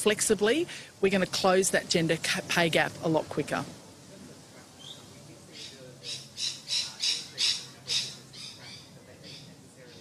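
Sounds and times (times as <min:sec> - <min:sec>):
bird squawking: 0:04.8 - 0:10.0.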